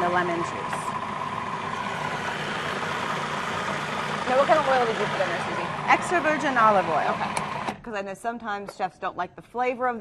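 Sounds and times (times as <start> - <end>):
food processor motor running: 0.0 - 7.8.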